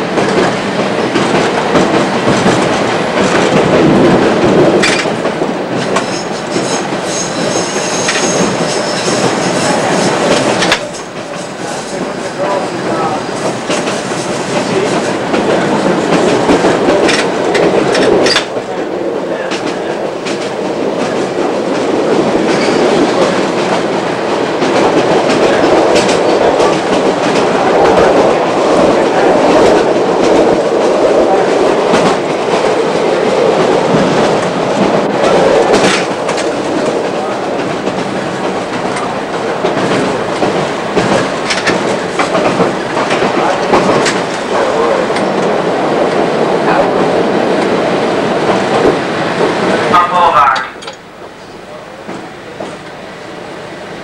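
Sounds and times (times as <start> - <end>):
train rumble: 0.0 - 54.0
wheels clicking over rails: 0.2 - 12.1, 19.5 - 47.8.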